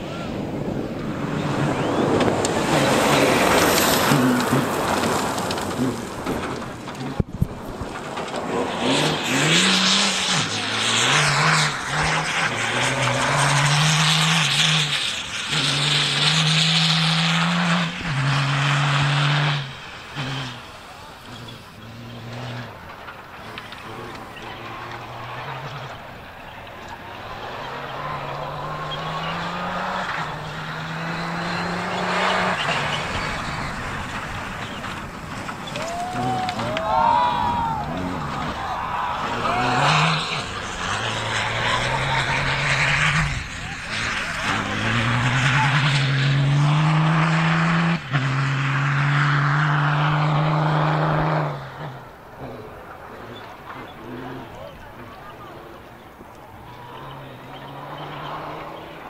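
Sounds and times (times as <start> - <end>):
rally car engine revving: 0.0 - 59.0
tyres rushing on loose dirt: 0.0 - 59.0.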